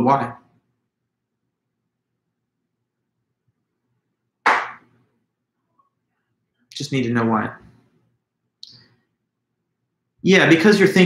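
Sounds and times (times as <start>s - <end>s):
sharp burst of noise: 4.5s - 4.8s.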